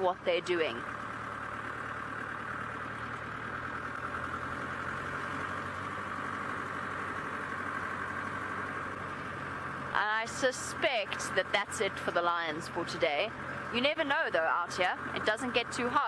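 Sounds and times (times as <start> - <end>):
vehicle engine driving on dirt: 0.0 - 16.0.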